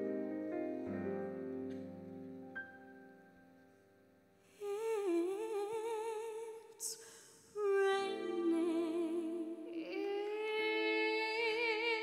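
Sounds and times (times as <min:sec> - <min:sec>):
piano: 0:00.0 - 0:06.1.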